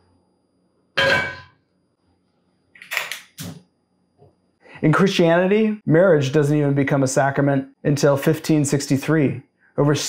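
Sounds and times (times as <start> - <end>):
skillet clanging on metal grate: 1.0 - 1.5.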